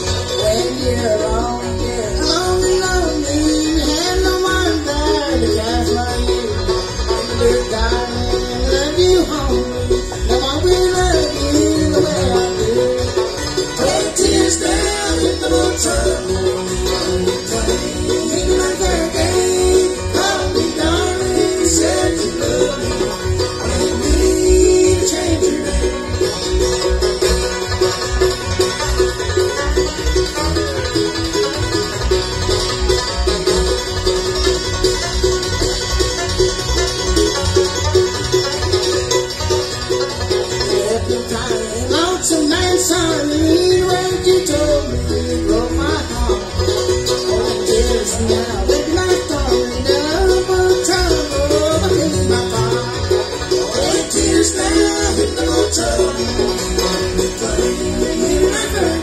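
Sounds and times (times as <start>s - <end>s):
acoustic guitar: 0.0s - 59.0s
banjo: 0.0s - 59.0s
mandolin: 0.0s - 59.0s
upright bass: 0.0s - 59.0s.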